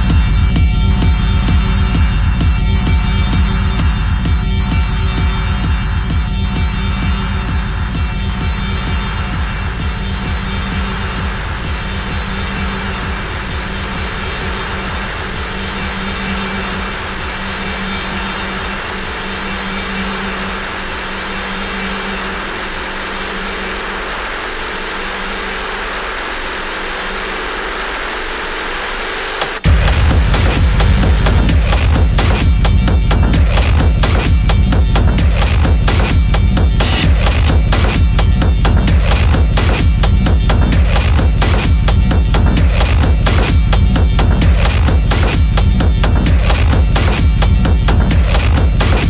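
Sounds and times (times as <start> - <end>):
industrial techno music: 0.0 - 49.0.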